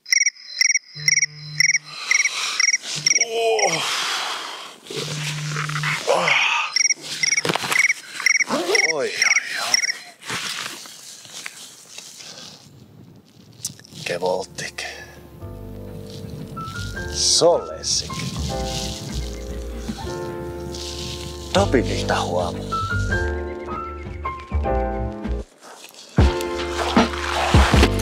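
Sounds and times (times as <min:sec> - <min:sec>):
rapid high cricket-like chirps: 0:00.0 - 0:04.2, 0:05.7 - 0:10.1, 0:16.0 - 0:17.3, 0:17.9 - 0:21.6.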